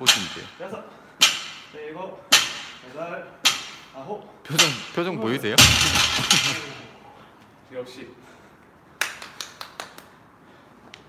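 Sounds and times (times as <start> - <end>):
person clapping hands: 9.0 - 10.1.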